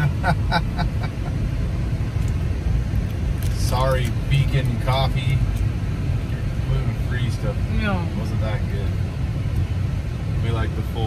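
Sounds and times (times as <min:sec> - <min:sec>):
car engine rumble and road noise: 0:00.0 - 0:11.0.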